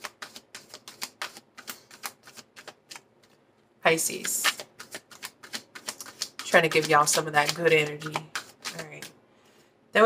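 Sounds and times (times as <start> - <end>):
cards being shuffled: 0.0 - 3.4, 4.0 - 9.1.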